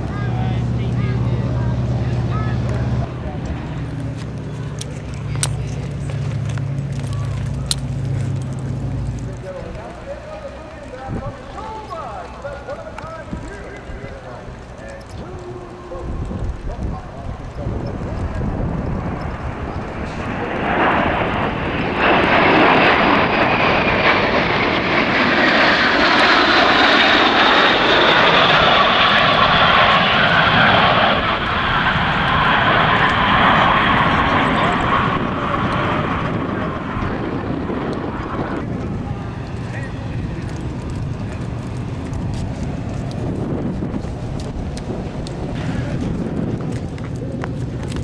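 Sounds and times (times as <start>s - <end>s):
jet aircraft passing overhead: 0.0s - 48.0s.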